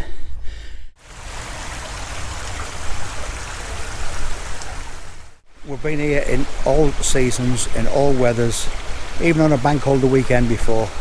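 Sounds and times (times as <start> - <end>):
small stream rushing: 1.0 - 11.0.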